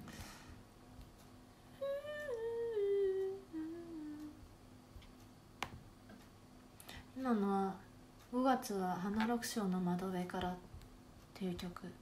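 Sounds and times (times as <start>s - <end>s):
woman humming: 1.7s - 4.6s.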